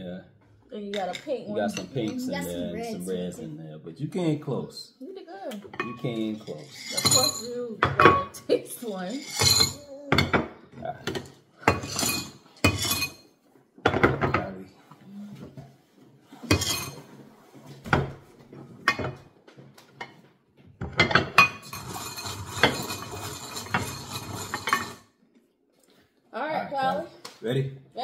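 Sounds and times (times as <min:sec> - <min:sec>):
candies clattering into glass bowl: 0:06.1 - 0:07.5, 0:09.2 - 0:10.4, 0:21.1 - 0:25.0.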